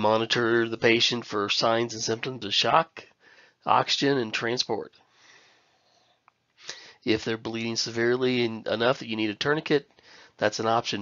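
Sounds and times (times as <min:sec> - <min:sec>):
man breathing: 0:03.1 - 0:03.7, 0:05.0 - 0:07.1, 0:09.9 - 0:10.4
sharp intake of breath: 0:03.2 - 0:03.6, 0:05.1 - 0:06.0, 0:06.6 - 0:07.1, 0:10.0 - 0:10.4.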